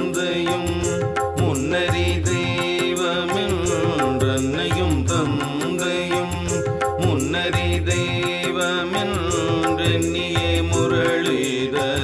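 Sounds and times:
light percussion beat: 0.0 - 12.0.

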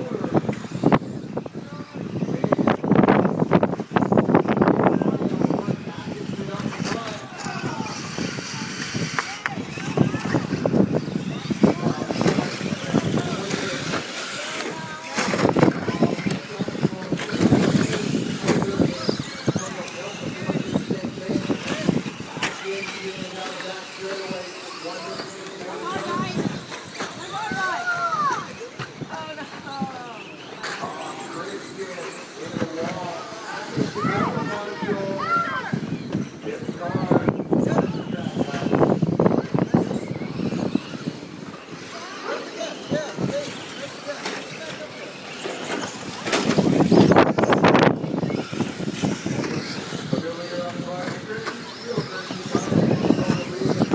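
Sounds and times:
indistinct voices: 0.0 - 53.9
radio-controlled car motors: 0.0 - 53.9.

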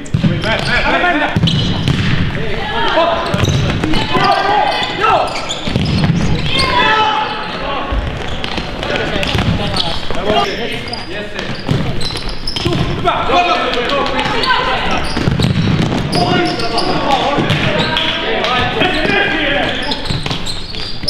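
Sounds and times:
players calling out: 0.0 - 21.0
ball kicked and bouncing: 1.4 - 2.4, 5.7 - 6.4, 15.1 - 16.2.

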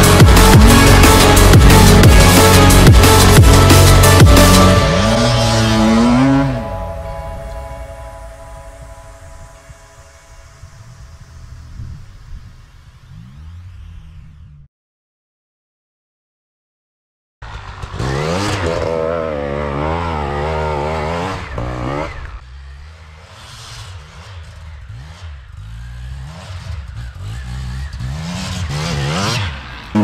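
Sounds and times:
motorcycle engine revving: 0.0 - 7.8, 10.4 - 14.7, 17.4 - 30.0.

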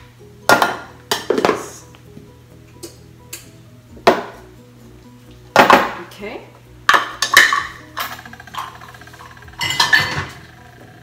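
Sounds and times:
soft background music: 0.0 - 11.0
kitchen utensils and dishes knocking: 6.9 - 10.6.

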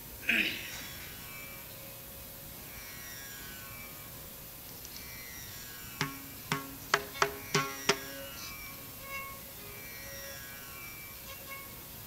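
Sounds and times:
recording hiss and hum: 0.0 - 12.0.

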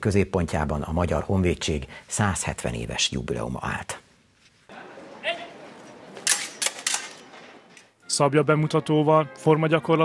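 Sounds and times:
sabre blades clashing: 6.2 - 7.6.

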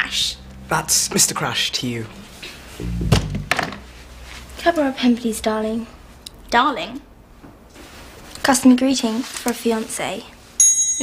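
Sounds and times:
dull thud: 2.8 - 3.8
sharp knock: 2.8 - 3.8.

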